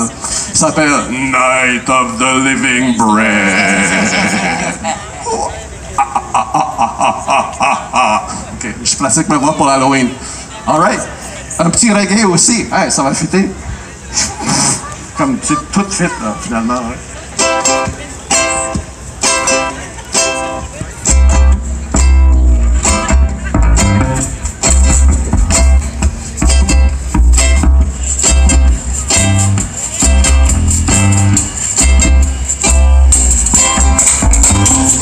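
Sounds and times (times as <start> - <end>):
guitar strumming reggae rhythm: 1.3 - 4.9, 15.6 - 35.0
deep bass line: 20.8 - 35.0.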